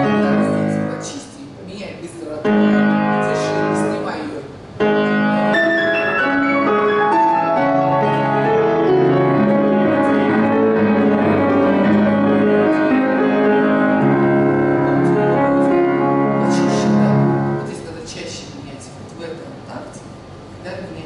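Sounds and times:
classical piano music: 0:00.0 - 0:01.3, 0:02.4 - 0:17.9.

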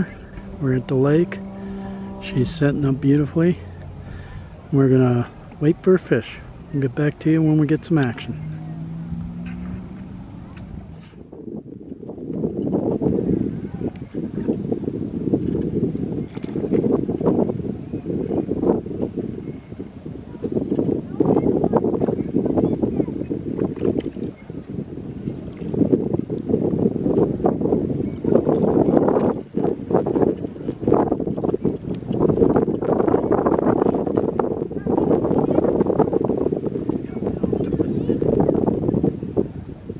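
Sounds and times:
wind buffeting microphone: 0:00.0 - 0:39.9.

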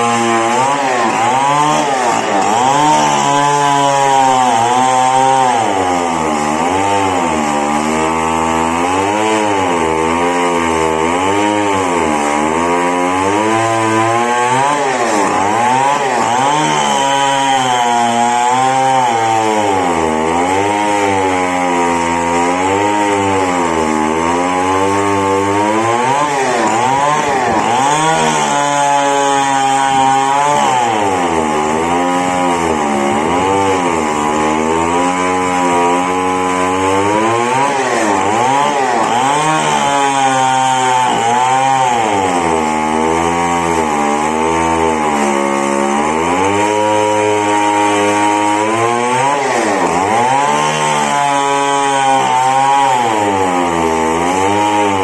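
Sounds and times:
chainsaw cutting through log: 0:00.0 - 0:55.0.

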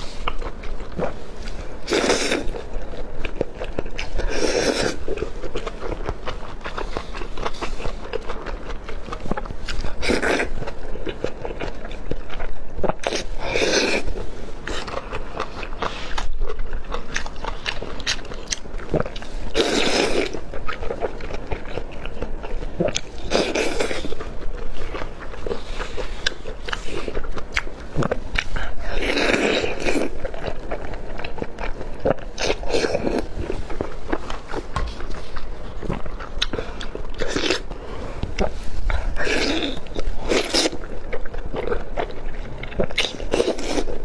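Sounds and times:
person chewing food: 0:00.0 - 0:44.0.

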